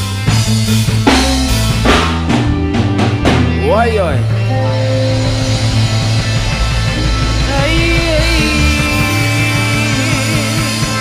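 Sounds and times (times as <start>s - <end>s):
reggae band playing: 0.0s - 11.0s
sharp drum hits: 1.1s - 2.6s
sliding tone rising and falling: 4.2s - 10.5s.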